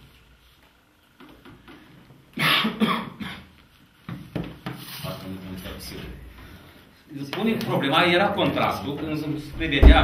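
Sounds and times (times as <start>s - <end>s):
man coughing: 2.4s - 3.5s.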